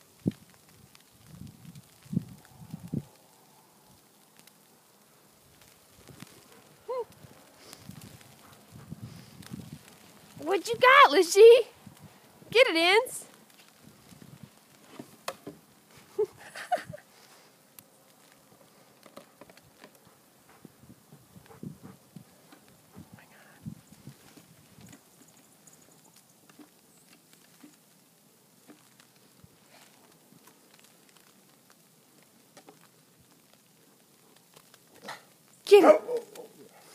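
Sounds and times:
dogs scuffling in snow: 7.4 - 11.4.

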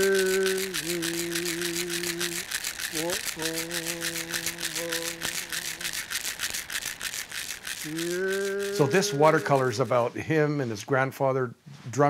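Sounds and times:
man singing long notes: 0.0 - 6.0, 7.9 - 10.1
hand rattle shaken: 0.0 - 10.2.

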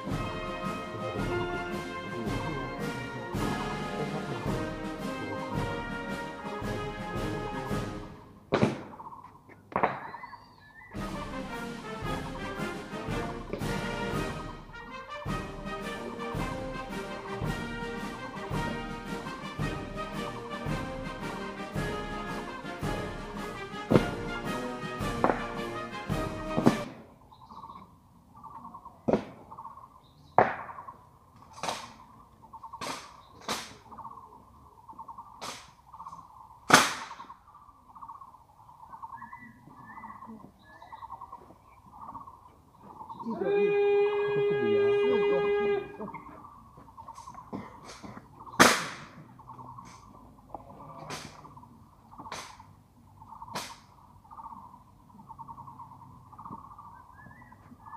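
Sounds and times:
ceremonial brass music: 0.0 - 8.8, 10.9 - 27.0, 43.3 - 46.2
rifles slapped in hands: 8.5 - 8.9, 25.2 - 25.5, 31.4 - 32.0, 32.8 - 33.8, 35.4 - 35.8, 36.7 - 37.2, 47.8 - 49.2, 51.1 - 51.4, 52.3 - 52.6, 53.6 - 53.9
rifle butts knocking on pavement: 25.2 - 25.5.

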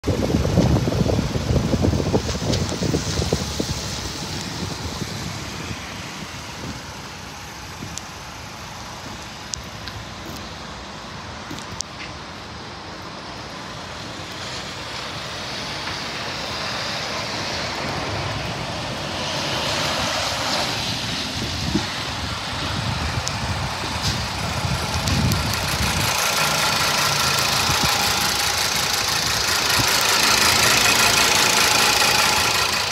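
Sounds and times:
car engine idling: 22.0 - 32.9.

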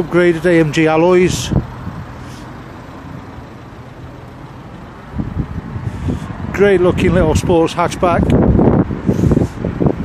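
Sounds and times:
outdoor background rumble: 0.0 - 10.0
wind on microphone: 5.1 - 10.0.

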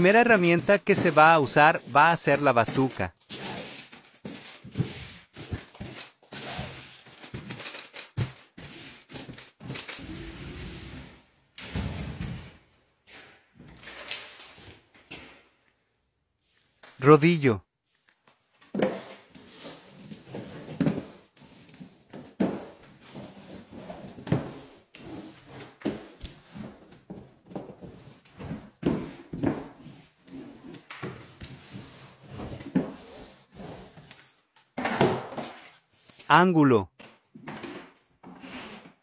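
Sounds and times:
drywall roller rubbing strokes: 10.0 - 11.4, 22.6 - 26.9, 27.8 - 30.8, 31.4 - 34.4, 37.6 - 39.0.

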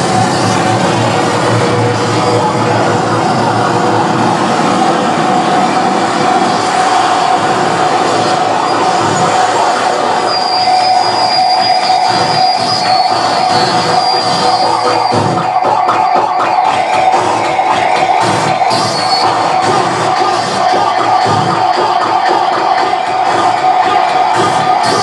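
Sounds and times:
distorted noise wall: 0.0 - 25.0
steady pitched drone: 0.0 - 25.0
thin shrill tone: 10.2 - 15.2.

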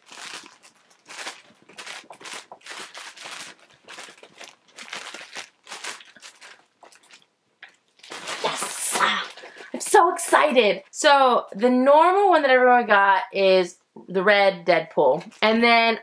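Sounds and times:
plastic bag crinkling: 0.0 - 9.9.

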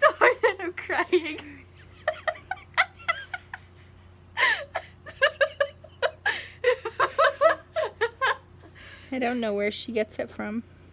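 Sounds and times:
person laughing hard: 1.9 - 3.8, 4.4 - 8.5.

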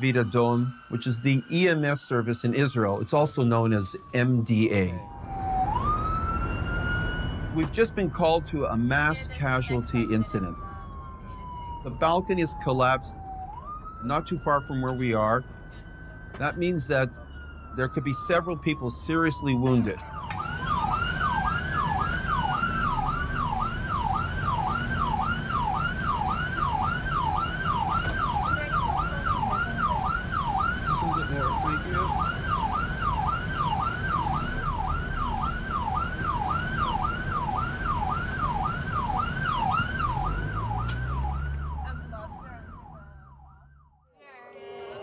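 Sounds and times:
ambulance siren yelping: 0.0 - 45.0
engine and road noise: 0.0 - 45.0.

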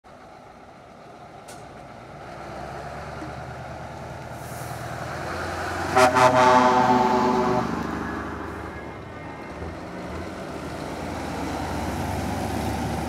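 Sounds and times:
truck diesel engine pulling away: 0.1 - 13.0
loud truck horn: 5.7 - 9.0.

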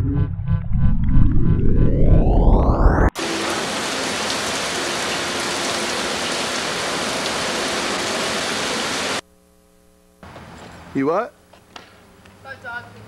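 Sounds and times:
heavy rain on a street: 3.2 - 9.2.

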